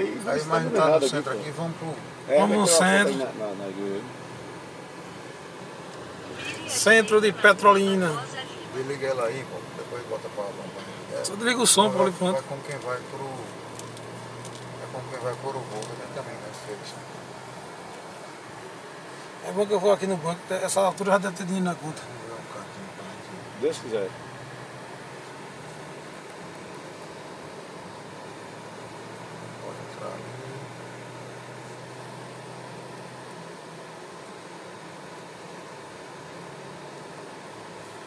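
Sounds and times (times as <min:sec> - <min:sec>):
car cabin road noise: 0:00.0 - 0:38.0
fan-like hiss: 0:00.0 - 0:38.0.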